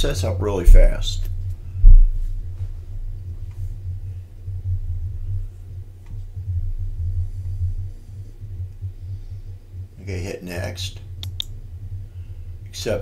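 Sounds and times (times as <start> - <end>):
low uneven rumbling hum: 0.0 - 13.0
faint click: 11.2 - 11.6.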